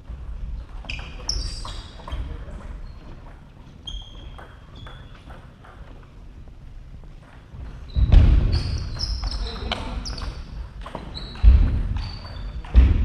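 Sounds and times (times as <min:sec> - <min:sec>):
shoes squeaking on floor: 0:00.0 - 0:12.8
heavy thud of footwork: 0:07.9 - 0:08.7, 0:12.6 - 0:13.0.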